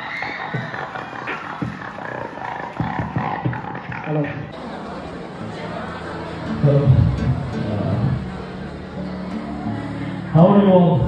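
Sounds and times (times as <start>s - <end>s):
beatboxing through microphone: 0.0s - 4.6s.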